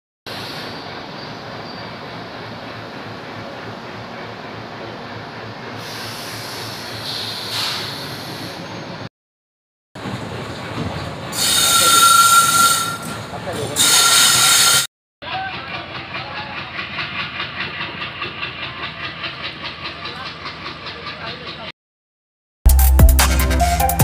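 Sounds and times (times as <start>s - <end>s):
train horn blasts: 11.4s - 13.2s
train wheels clattering: 15.3s - 21.7s.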